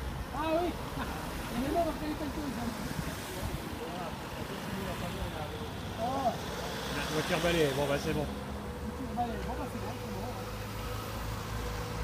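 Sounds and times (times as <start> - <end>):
vehicle engine rumble: 0.0 - 12.0.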